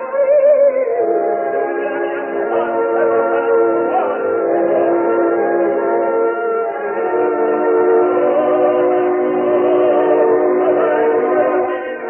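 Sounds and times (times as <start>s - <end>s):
opera orchestra chords: 0.0s - 12.0s
opera singers: 0.0s - 12.0s.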